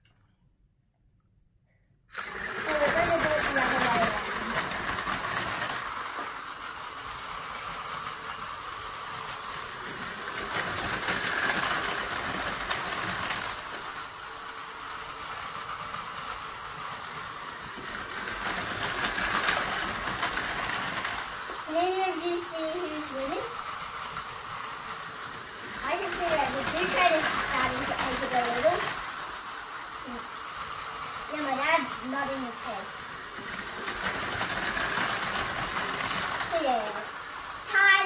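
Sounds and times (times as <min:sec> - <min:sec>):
toy trains buzzing whir: 0:02.1 - 0:38.0.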